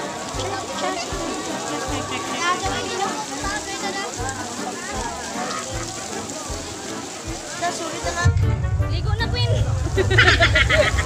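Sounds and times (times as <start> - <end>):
crowd voices: 0.0 - 11.0
fountain splashing: 0.0 - 11.0
music with bass beat: 8.1 - 11.0.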